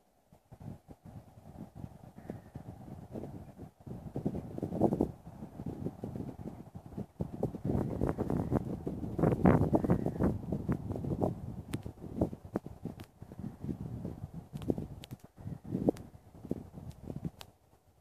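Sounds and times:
wind buffeting microphone: 0:00.2 - 0:18.0.

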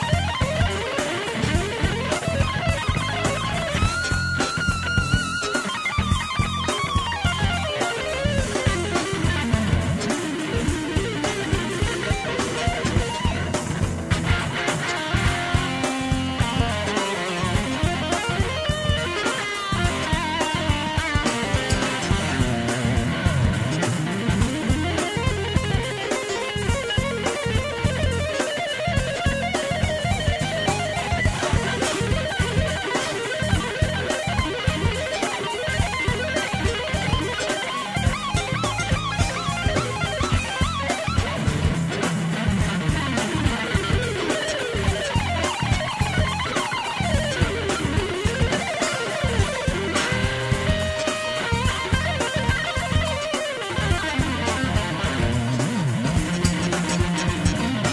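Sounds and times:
bass guitar: 0:00.0 - 0:57.9
drums: 0:00.0 - 0:57.9
fast electric guitar solo: 0:00.0 - 0:57.9.

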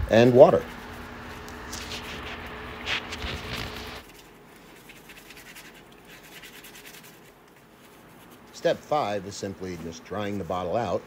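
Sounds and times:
sponge scrubbing glass bottle: 0:04.6 - 0:08.4.

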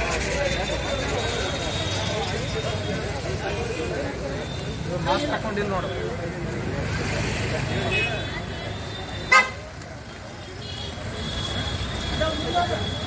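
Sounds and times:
traffic engines running: 0:00.0 - 0:13.0
vehicle horn toot: 0:09.1 - 0:09.6.

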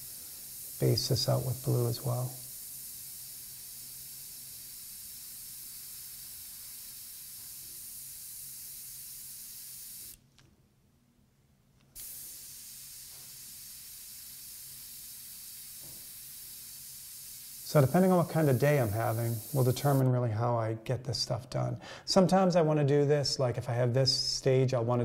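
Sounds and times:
airbrush spraying with high hiss: 0:00.0 - 0:10.2, 0:12.0 - 0:20.1.

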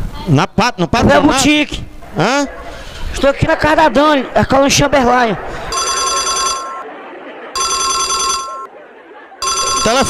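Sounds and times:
telephone bell ringing: 0:05.7 - 0:06.9, 0:07.5 - 0:08.7, 0:09.4 - 0:10.0.

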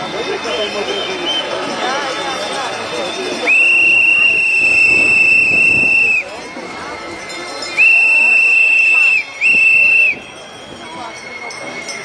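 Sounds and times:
whistle blast: 0:00.0 - 0:06.3, 0:07.7 - 0:12.0
crowd voices: 0:00.0 - 0:12.0.

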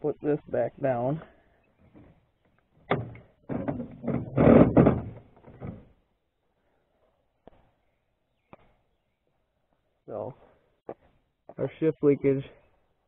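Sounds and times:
metal parts clunking and rattling: 0:02.9 - 0:05.9.

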